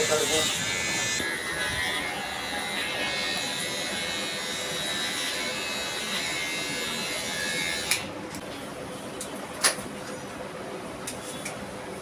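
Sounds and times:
electric hair clippers buzzing: 0.0s - 8.1s.

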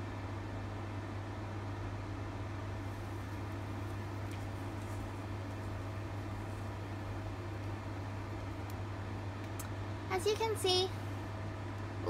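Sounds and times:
low hum with hiss: 0.0s - 12.0s.

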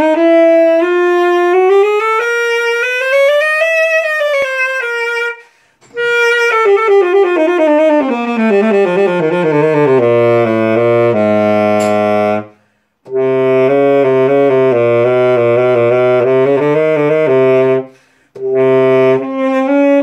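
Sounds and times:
tenor saxophone playing runs: 0.0s - 20.0s.

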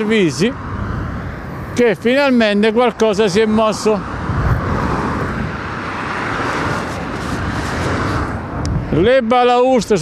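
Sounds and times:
car passing by: 0.0s - 8.9s.

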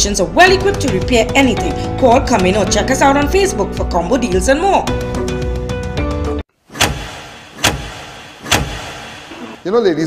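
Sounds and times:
dramatic sound effect hits: 6.7s - 9.7s.

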